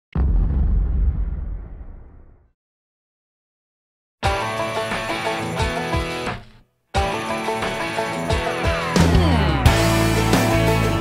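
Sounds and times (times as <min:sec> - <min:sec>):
deep cinematic boom: 0:00.2 - 0:02.5.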